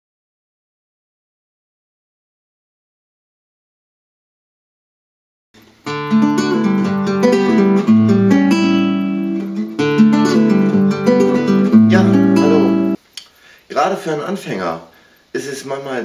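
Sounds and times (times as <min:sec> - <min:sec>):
classical guitar chords: 0:05.6 - 0:13.0.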